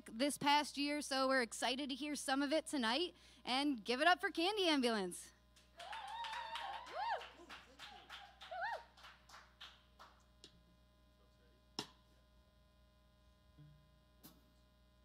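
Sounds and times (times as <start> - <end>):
people clapping: 5.6 - 10.3
people whooping: 5.8 - 9.2.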